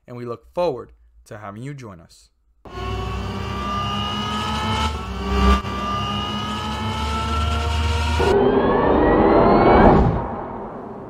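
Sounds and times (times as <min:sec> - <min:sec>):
car engine accelerating: 0:02.7 - 0:11.0
rising whoosh: 0:02.8 - 0:11.0.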